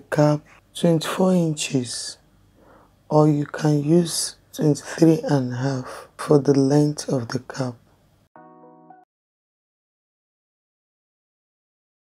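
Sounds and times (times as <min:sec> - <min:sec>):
background music: 0:08.4 - 0:09.1.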